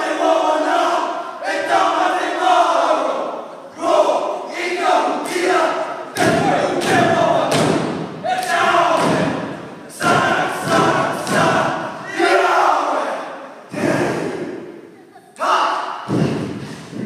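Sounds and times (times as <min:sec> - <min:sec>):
men shouting a chant in unison: 0:00.0 - 0:14.5
body slaps: 0:06.2 - 0:09.5, 0:10.1 - 0:11.7.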